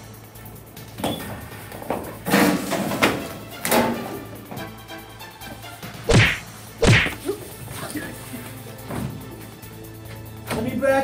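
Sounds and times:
loud whacks: 6.1 - 7.2.

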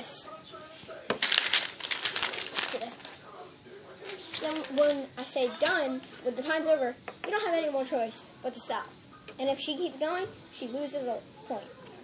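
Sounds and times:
paper rustling and flapping: 1.1 - 3.2, 4.0 - 5.0.

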